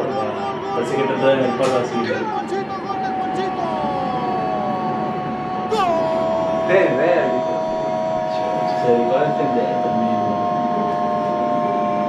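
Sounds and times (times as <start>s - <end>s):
horns blowing long tones: 0.0s - 12.0s
stadium crowd din: 0.0s - 12.0s.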